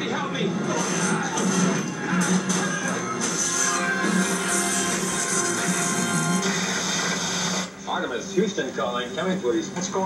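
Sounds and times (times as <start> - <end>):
background music from television: 0.0 - 10.0.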